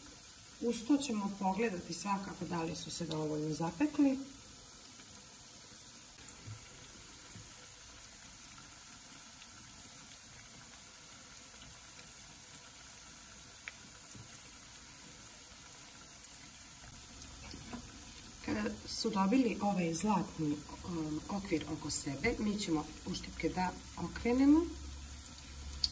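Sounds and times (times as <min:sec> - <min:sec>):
fritters sizzling in oil: 0:00.0 - 0:25.9.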